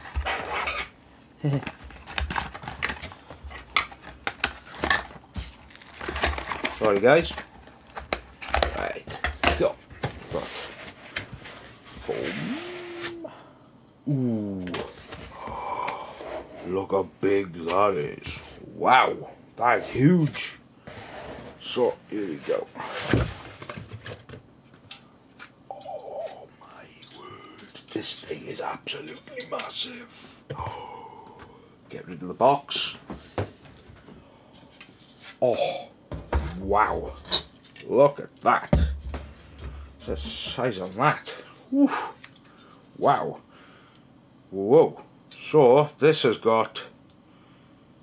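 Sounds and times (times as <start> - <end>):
rising tone: 12.1 - 13.3.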